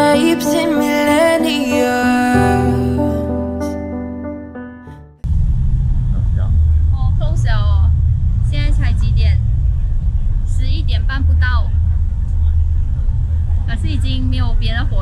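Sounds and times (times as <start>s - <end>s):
low rumble of street noise: 5.2s - 15.0s
woman speaking: 7.0s - 9.4s, 10.5s - 11.7s, 13.7s - 15.0s.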